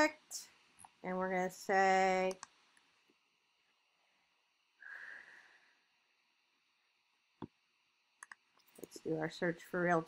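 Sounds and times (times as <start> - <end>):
computer mouse clicks: 2.2 - 2.9, 8.2 - 9.0.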